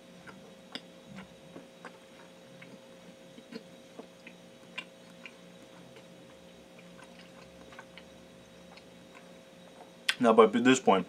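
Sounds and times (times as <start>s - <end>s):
person chewing food: 0.0s - 10.2s
faint steady hum: 0.0s - 11.0s.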